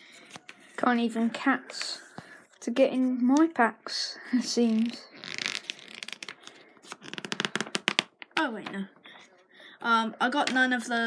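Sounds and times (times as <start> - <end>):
paper pages rustling: 0.0 - 1.0.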